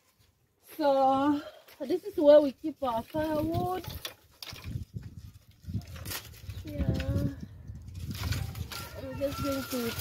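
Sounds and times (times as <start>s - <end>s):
firewood sticks knocking together: 3.4s - 5.1s.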